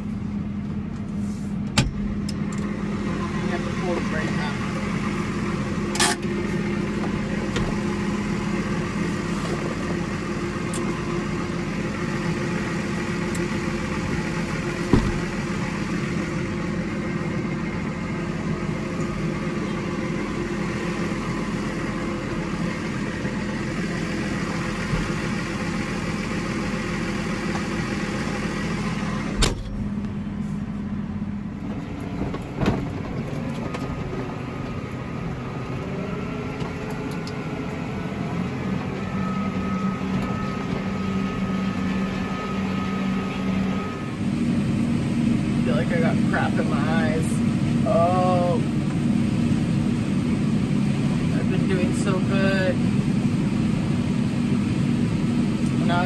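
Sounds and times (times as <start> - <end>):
tractor engine drone: 0.0 - 56.0.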